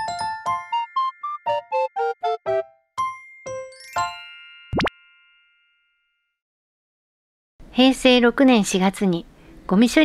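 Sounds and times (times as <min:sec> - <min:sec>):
bell-like keyboard jingle: 0:00.0 - 0:05.6.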